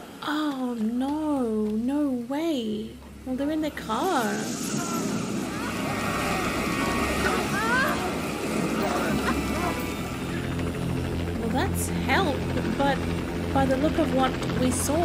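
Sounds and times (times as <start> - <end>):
tense music: 0.1 - 15.0
low rumble: 1.1 - 15.0.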